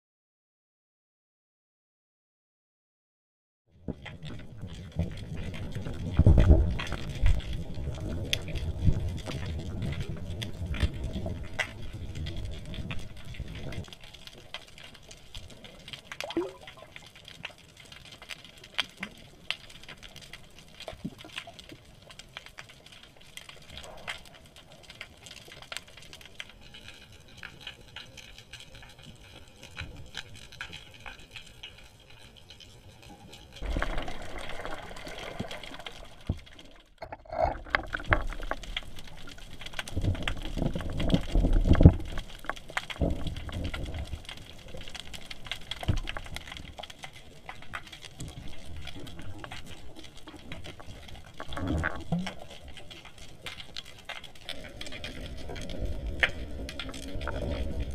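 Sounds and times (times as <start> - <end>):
faint crackling clicks underwater: 3.8 - 57.9
low rumbling water surges: 33.6 - 36.8, 37.9 - 57.9.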